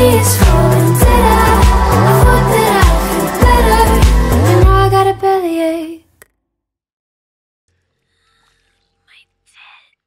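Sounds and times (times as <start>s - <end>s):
person whispering: 8.3s - 10.0s.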